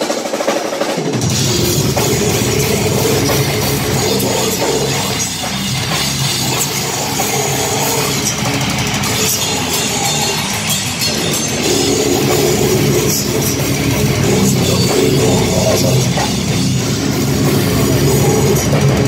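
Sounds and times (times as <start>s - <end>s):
metal band playing: 0.0s - 19.0s.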